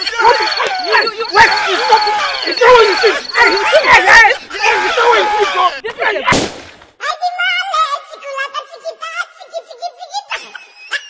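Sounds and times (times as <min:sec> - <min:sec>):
raised high-pitched voices: 0:00.0 - 0:06.3.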